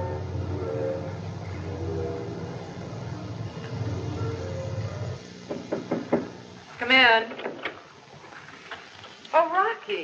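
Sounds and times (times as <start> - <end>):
knocks on a wooden door: 5.4 - 6.4.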